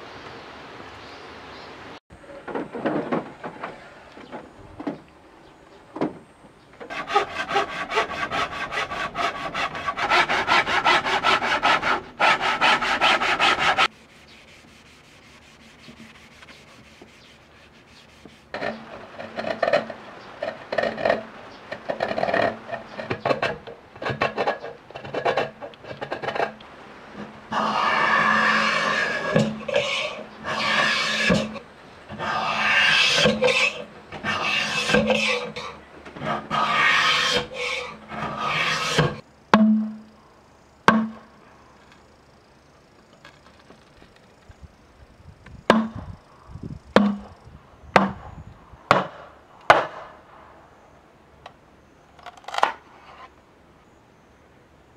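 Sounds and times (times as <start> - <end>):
knife splitting bamboo: 6.9 - 20.0
hand saw cutting bamboo: 6.9 - 21.2, 27.2 - 39.2
blade scraping bamboo skin: 6.9 - 26.6, 27.2 - 39.2.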